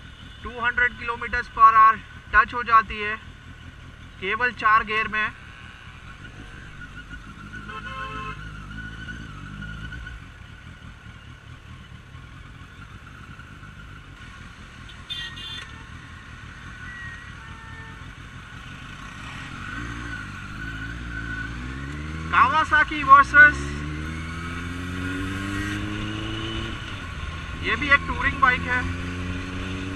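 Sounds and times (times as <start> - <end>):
motorcycle engine accelerating: 2.9 - 29.9.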